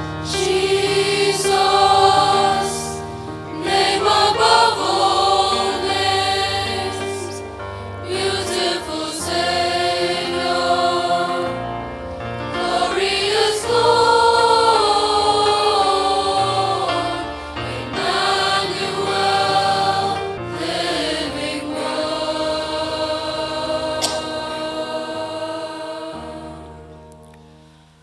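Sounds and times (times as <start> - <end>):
church choir singing a hymn: 0.0 - 27.1.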